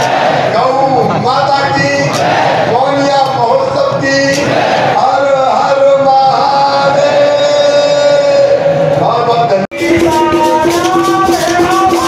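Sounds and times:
live folk music: 0:09.7 - 0:12.0.

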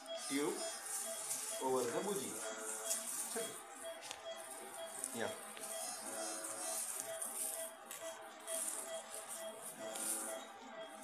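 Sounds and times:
patient monitor beeping: 0:00.0 - 0:11.0.

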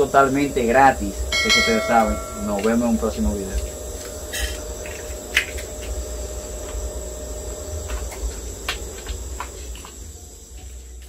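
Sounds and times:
high-pitched whine: 0:01.2 - 0:03.6
low hum: 0:01.3 - 0:03.2.

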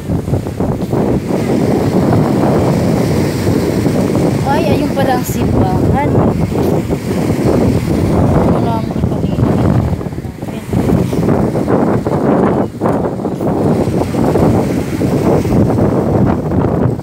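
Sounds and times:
wind buffeting microphone: 0:00.0 - 0:17.0
faint voices: 0:08.2 - 0:11.3.

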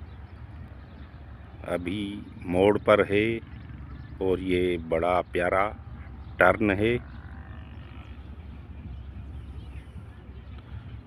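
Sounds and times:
distant diesel locomotive rumble: 0:00.0 - 0:11.0.

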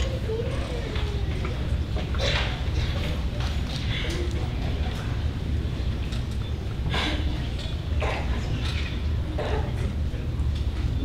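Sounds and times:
faint voice: 0:00.0 - 0:05.4, 0:06.5 - 0:11.0
low room rumble: 0:00.0 - 0:11.0.

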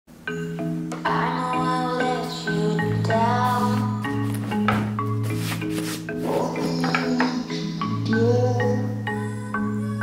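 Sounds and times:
background music with bass line: 0:00.3 - 0:10.0.

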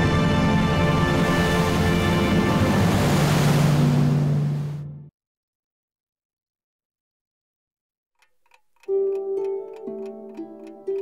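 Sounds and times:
music with sustained notes: 0:00.0 - 0:05.1, 0:08.8 - 0:11.0
alarm clock ticking: 0:08.2 - 0:11.0.

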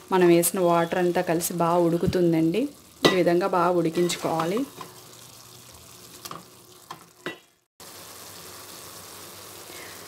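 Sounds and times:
mixture sizzling: 0:00.0 - 0:10.0.

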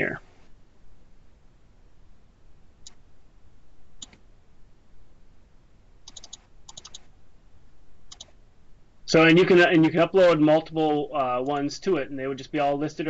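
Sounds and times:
computer mouse clicking: 0:04.0 - 0:04.2, 0:06.1 - 0:07.1, 0:08.1 - 0:08.4.

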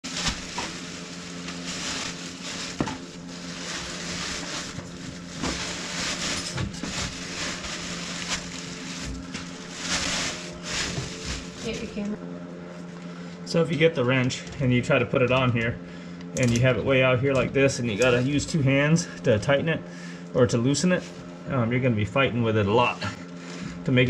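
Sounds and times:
plastic bag crinkling: 0:00.0 - 0:12.0
steady low hum: 0:00.0 - 0:24.0.

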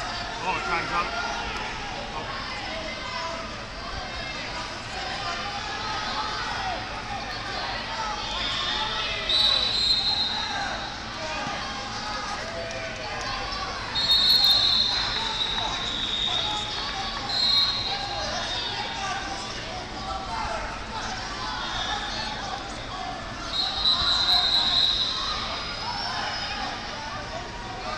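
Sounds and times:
hubbub of many voices echoing: 0:00.0 - 0:27.9
shrill whistle blasts: 0:08.4 - 0:10.9, 0:13.9 - 0:16.6, 0:17.2 - 0:18.2, 0:23.4 - 0:26.2.

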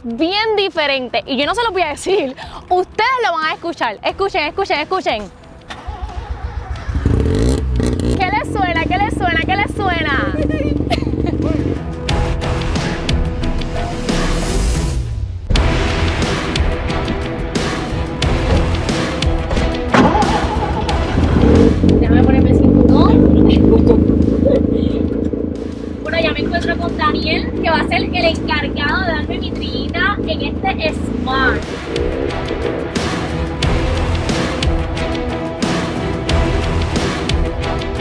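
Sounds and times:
rotary engine revving: 0:05.7 - 0:13.2, 0:16.8 - 0:38.0.

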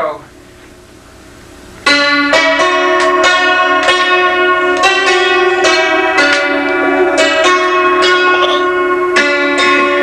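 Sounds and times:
bell-like struck melody: 0:01.8 - 0:10.0.

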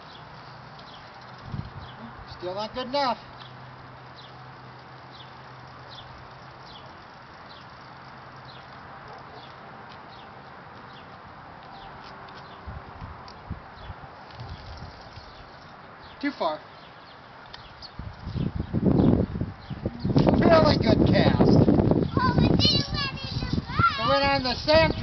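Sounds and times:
bird chirping: 0:00.0 - 0:12.7, 0:13.3 - 0:25.0
low thumps: 0:18.4 - 0:22.7
outdoor hiss: 0:22.2 - 0:25.0.

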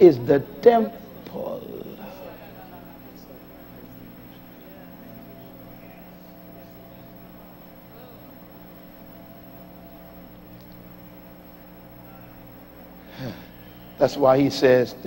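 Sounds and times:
electrical hum: 0:00.0 - 0:15.0.

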